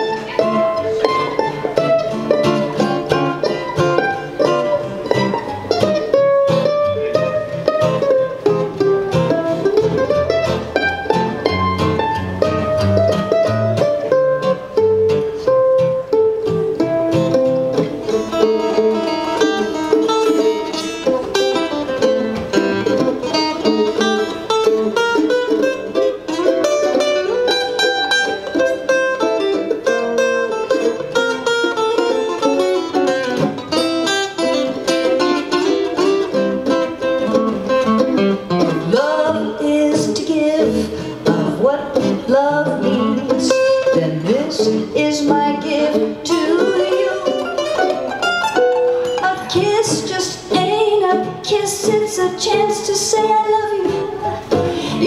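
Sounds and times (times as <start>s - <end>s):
acoustic guitars strumming chords: 0.0s - 55.0s
mandolin picked lead line: 0.0s - 55.0s.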